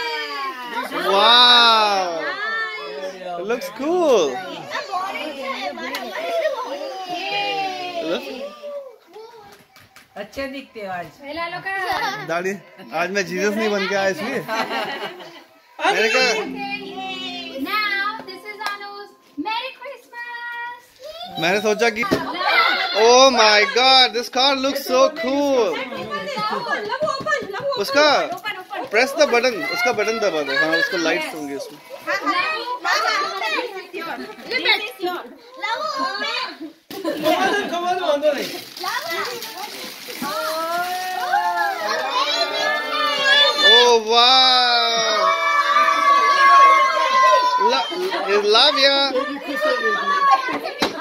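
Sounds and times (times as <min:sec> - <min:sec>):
excited voices chattering: 0:00.0 - 0:10.1, 0:11.4 - 0:51.0.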